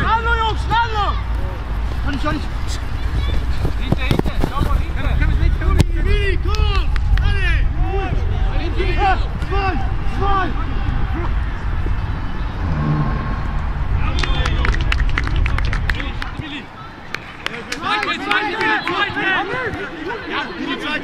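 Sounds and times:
wind rumbling on microphone: 0:02.8 - 0:16.6.

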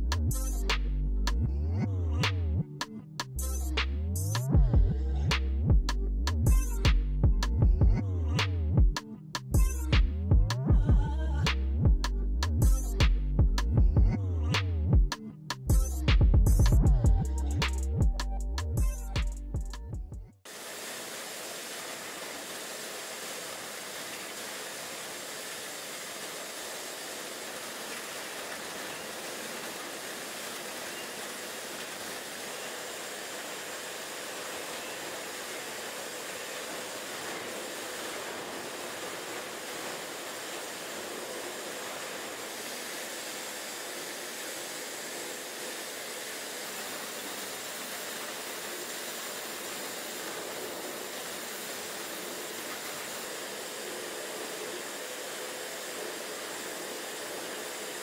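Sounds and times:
steady machinery hiss: 0:20.4 - 0:58.0.

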